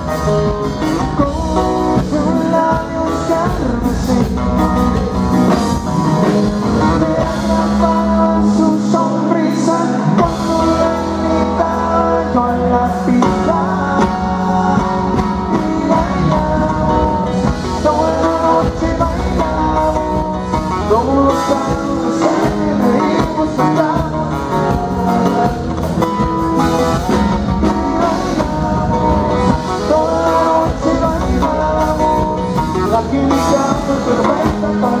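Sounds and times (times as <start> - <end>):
drums: 0.0 - 35.0
guitar: 0.0 - 35.0
person singing: 0.0 - 35.0.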